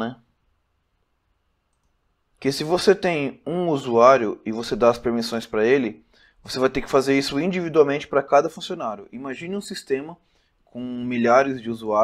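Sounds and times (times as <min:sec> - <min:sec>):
person speaking: 0:01.8 - 0:12.0.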